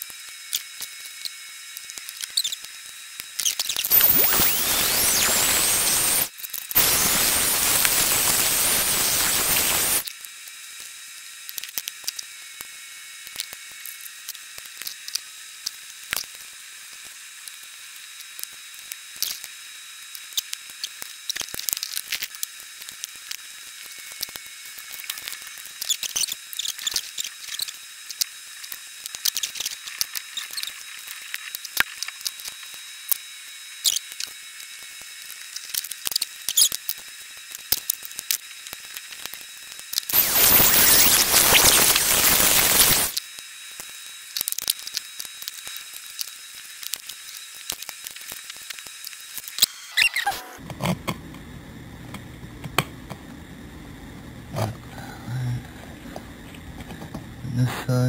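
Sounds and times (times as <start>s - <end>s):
steady hiss: 3.9s - 10.0s, 40.1s - 43.2s
low hum: 50.4s - 58.0s.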